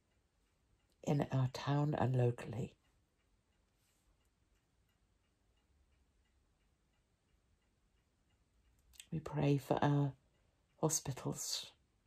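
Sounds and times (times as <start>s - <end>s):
clock ticking: 0.0s - 12.0s.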